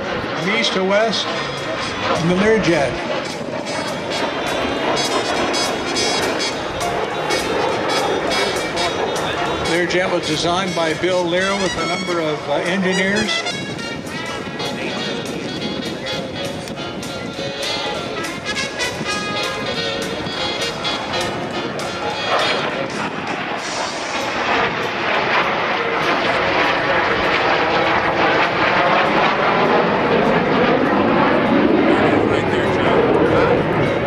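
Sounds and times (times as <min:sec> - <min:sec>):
jet engines rushing: 0:00.0 - 0:34.0
music over public address: 0:00.1 - 0:34.0.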